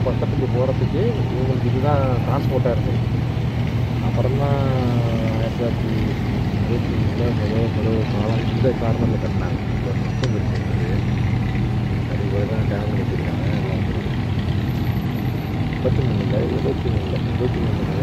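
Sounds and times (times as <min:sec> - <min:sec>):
steady low hum: 0:00.0 - 0:18.0
quiet speech: 0:15.8 - 0:18.0.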